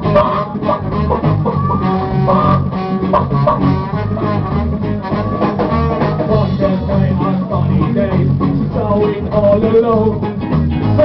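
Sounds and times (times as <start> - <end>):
live reggae band playing: 0.0 - 11.0.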